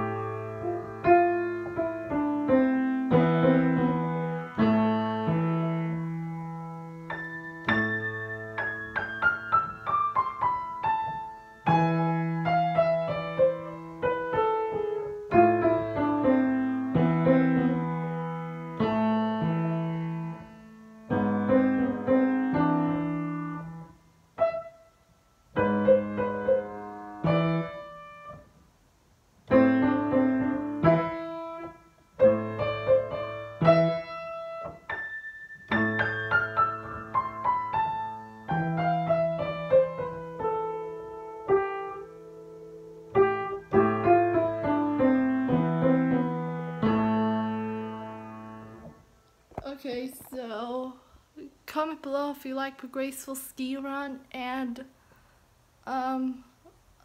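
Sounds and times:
solo piano: 0.0s - 49.7s.

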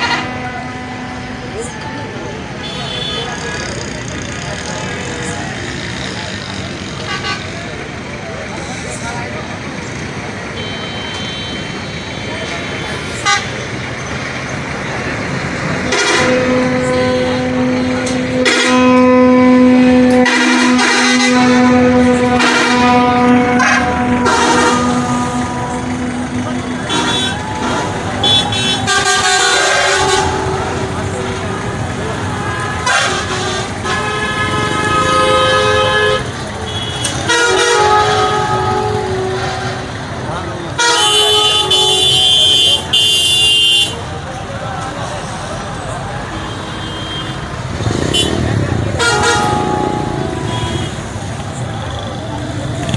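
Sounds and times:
vehicle horns honking: 0.0s - 1.8s, 2.5s - 6.1s, 6.8s - 7.7s, 10.5s - 14.1s, 15.6s - 44.2s, 46.2s - 52.9s
steady traffic noise: 0.0s - 52.9s.

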